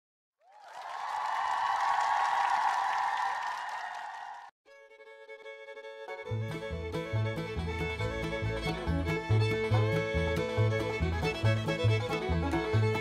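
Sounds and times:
music with held string notes: 4.7s - 13.0s.

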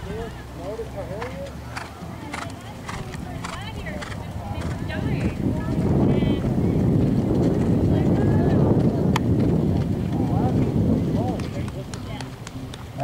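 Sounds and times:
faint voices: 0.0s - 13.0s
horse hoofbeats cantering: 0.0s - 13.0s.

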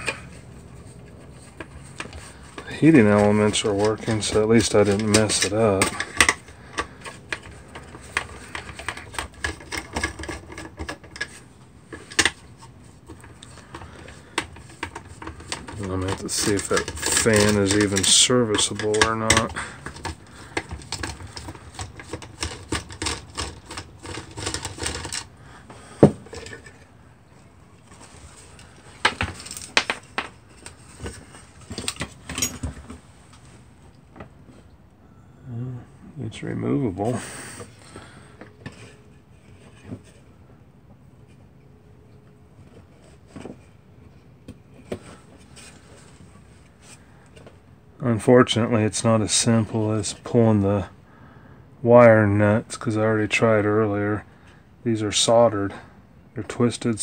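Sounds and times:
metallic clicks and scrapes: 0.0s - 25.3s.

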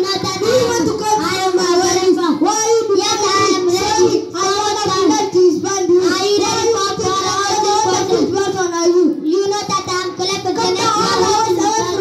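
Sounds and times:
child singing into microphone: 0.0s - 12.0s.

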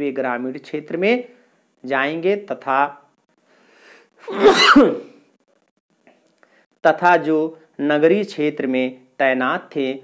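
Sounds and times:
person breathing in: 3.5s - 4.1s
person sneezing: 4.2s - 5.2s.

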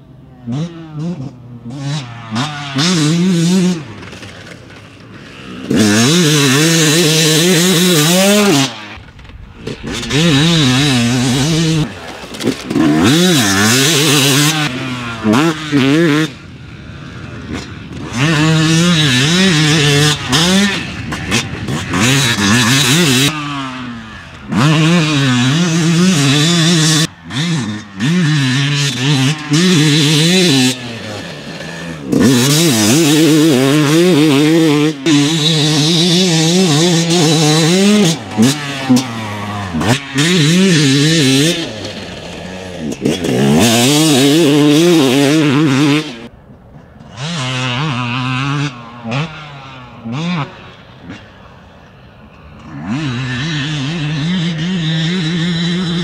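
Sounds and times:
dirt bike engine revving: 0.0s - 46.3s, 47.0s - 56.0s.

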